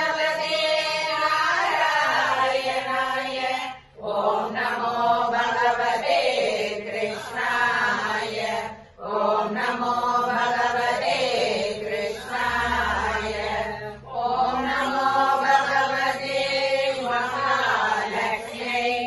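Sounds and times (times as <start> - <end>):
devotional chanting: 0.0 - 19.0.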